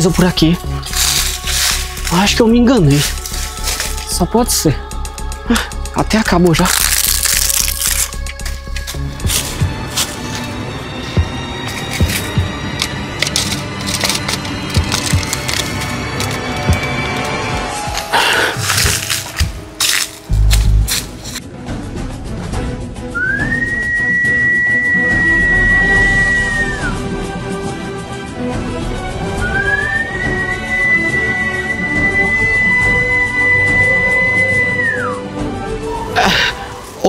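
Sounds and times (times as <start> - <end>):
background music: 0.0 - 37.0
snapping and crackling: 0.8 - 4.2, 5.5 - 10.6, 11.2 - 21.4
long steady whistle: 23.2 - 27.0, 29.4 - 35.2.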